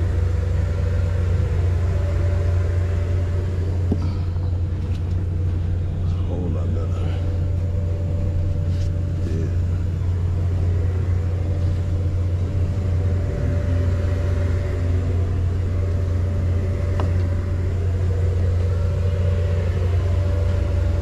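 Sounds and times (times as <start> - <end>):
car idling: 0.0 - 21.0.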